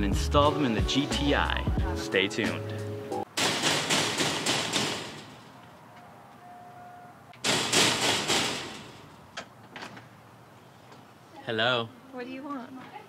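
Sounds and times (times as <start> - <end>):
knocking on steel door: 3.4 - 5.3.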